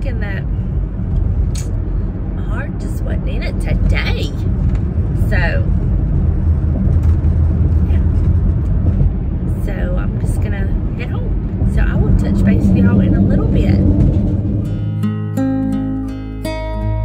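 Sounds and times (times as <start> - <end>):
woman's voice: 0.0 - 0.5, 2.4 - 4.5, 5.2 - 5.7, 9.5 - 14.1
car cabin road and engine rumble: 0.0 - 16.1.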